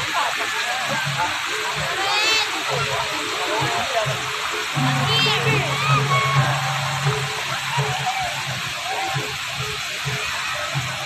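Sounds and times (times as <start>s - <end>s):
fountain water jets spraying: 0.0s - 11.0s
people's voices: 0.0s - 11.0s
music playing: 4.8s - 8.7s.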